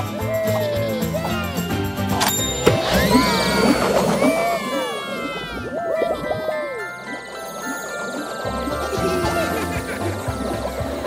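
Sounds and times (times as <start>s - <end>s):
cartoon music: 0.0s - 11.0s
swooping whistle-like tones: 0.0s - 11.0s.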